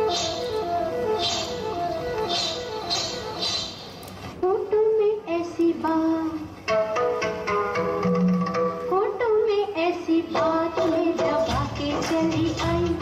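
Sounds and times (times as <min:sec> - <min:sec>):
instrumental accompaniment: 0:00.0 - 0:04.4, 0:06.3 - 0:13.0
woman singing: 0:08.9 - 0:13.0.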